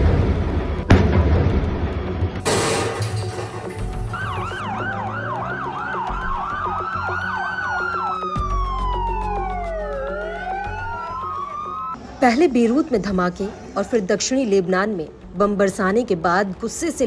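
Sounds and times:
sirens wailing: 3.8s - 12.0s
siren yelp: 4.0s - 12.0s.

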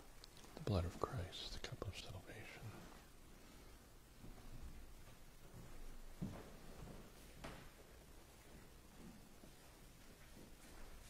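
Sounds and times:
person whispering: 0.4s - 3.1s.

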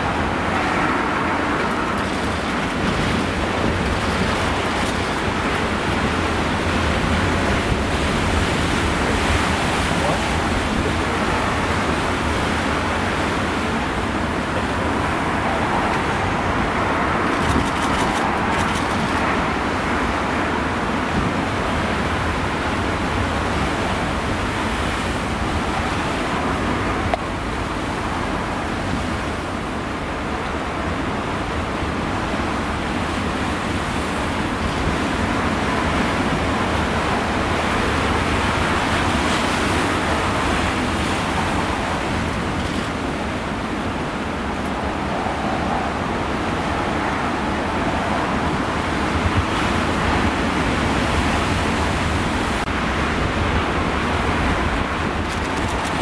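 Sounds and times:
storm surf breaking over rocks: 0.0s - 56.0s
storm wind: 0.0s - 56.0s.

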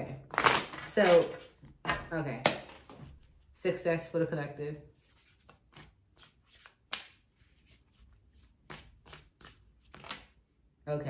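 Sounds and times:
cards shuffling: 5.0s - 10.4s.

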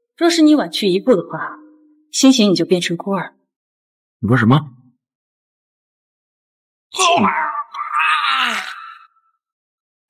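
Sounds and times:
man groaning in pain: 7.0s - 9.2s.

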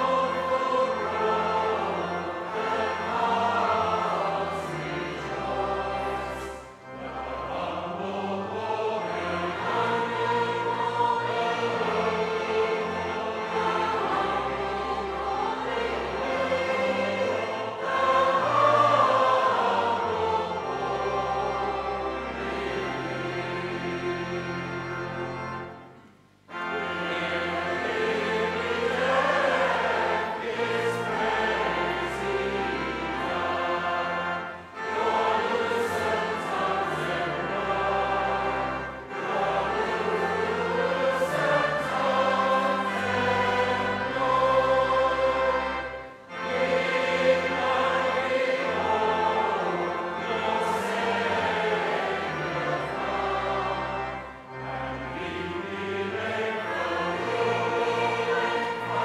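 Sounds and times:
choir and congregation singing hymn: 0.0s - 25.9s, 26.5s - 59.0s
pipe organ bass notes: 0.0s - 59.0s.

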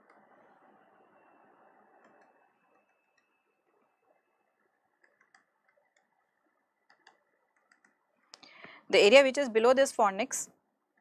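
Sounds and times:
stylus tapping tablet screen: 1.6s - 8.4s
breath: 8.4s - 8.9s
woman speaking: 8.9s - 10.5s.

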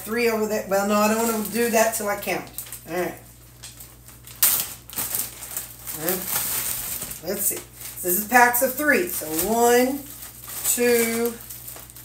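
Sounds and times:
plastic bag rustling and crinkling: 0.0s - 12.0s.

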